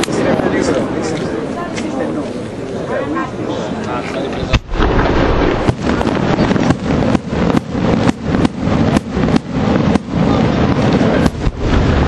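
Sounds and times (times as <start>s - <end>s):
continuous fireworks rumble: 0.0s - 12.0s
firework shells bursting: 4.5s - 12.0s.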